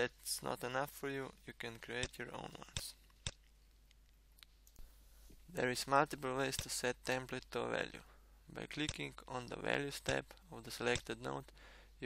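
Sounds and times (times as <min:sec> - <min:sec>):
sharp click: 0:08.8 - 0:09.1, 0:10.0 - 0:11.1.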